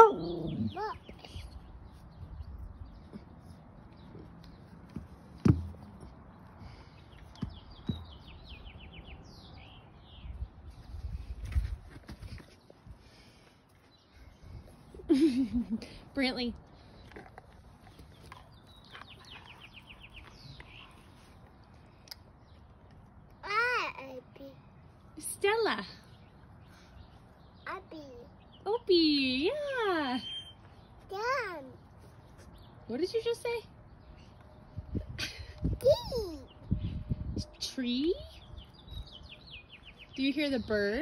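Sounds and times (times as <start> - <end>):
songbird singing: 0.0 - 11.5, 12.4 - 41.0
birds chirping: 0.0 - 11.6, 12.2 - 41.0.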